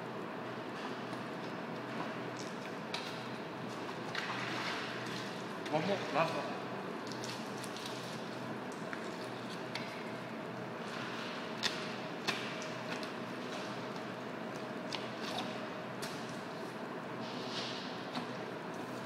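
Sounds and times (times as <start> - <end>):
steady room hum: 0.0 - 19.0.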